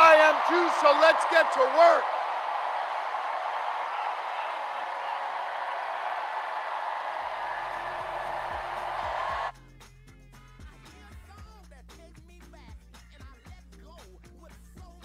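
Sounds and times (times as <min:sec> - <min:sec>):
crowd cheering and clapping: 0:00.0 - 0:09.6
music with steady bass line: 0:08.4 - 0:15.0.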